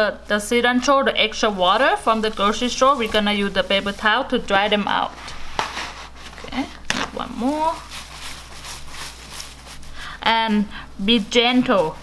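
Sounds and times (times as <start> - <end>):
paper towel rustling: 0.3 - 12.0.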